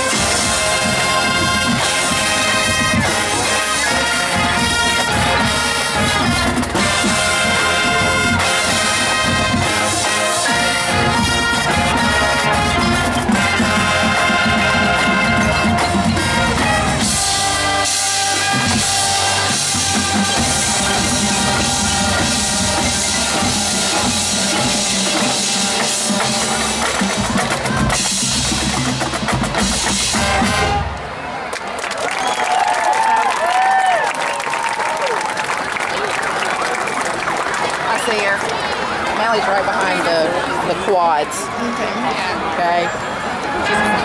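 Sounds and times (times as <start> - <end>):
marching drums: 0.0 - 31.0
trumpets: 0.0 - 31.5, 41.1 - 44.0
marching band playing: 0.0 - 44.0.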